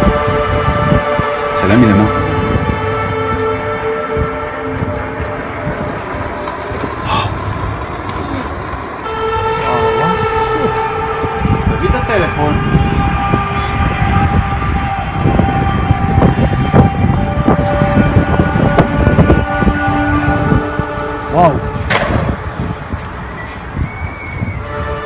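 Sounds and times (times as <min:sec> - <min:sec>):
heavy background rumble: 0:00.0 - 0:25.0
horn-like drone in the sky: 0:00.0 - 0:25.0.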